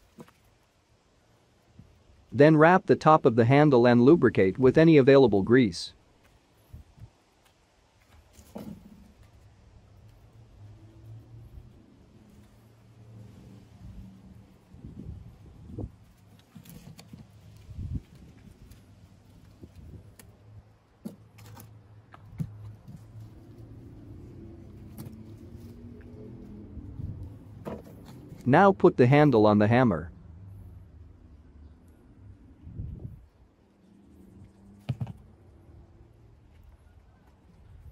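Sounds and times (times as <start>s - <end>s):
quiet handling sounds: 6.0s - 28.5s.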